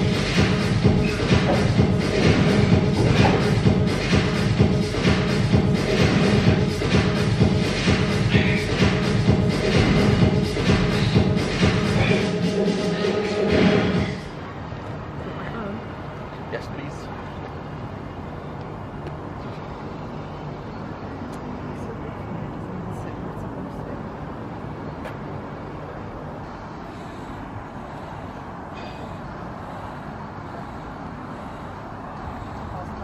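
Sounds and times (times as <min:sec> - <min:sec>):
distant road traffic rumble: 0:00.0 - 0:33.0.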